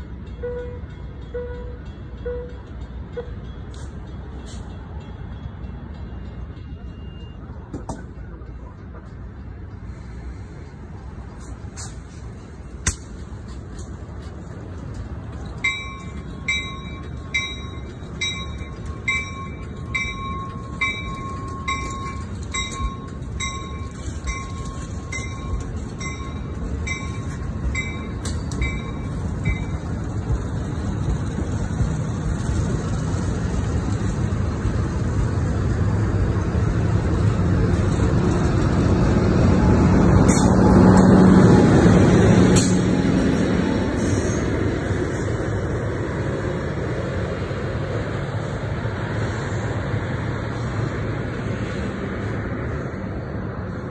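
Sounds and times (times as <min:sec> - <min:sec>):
low locomotive engine tone: 0:00.0 - 0:53.9
train rolling past: 0:00.0 - 0:53.9.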